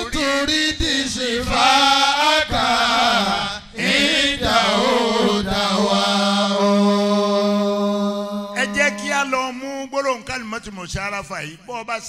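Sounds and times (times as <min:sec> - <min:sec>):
man chanting into a microphone: 0:00.0 - 0:03.8, 0:06.4 - 0:12.0.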